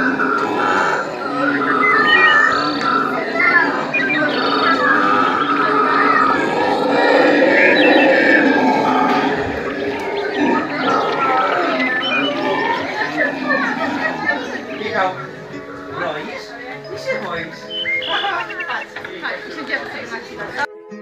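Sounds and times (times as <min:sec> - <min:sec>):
howler monkeys roaring: 0:00.0 - 0:16.8
people's voices: 0:00.0 - 0:20.8.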